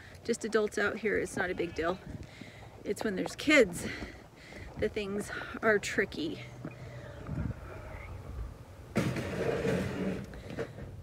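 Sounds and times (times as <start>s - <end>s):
low rumbles: 0.8s - 11.0s
wind on microphone: 1.3s - 2.4s, 7.1s - 10.3s.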